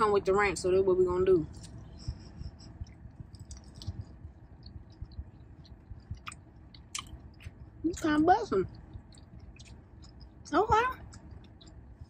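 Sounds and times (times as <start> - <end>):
car air conditioning hum: 0.0 - 12.0
close-up chewing: 1.5 - 12.0
mouth clicks: 2.8 - 7.7.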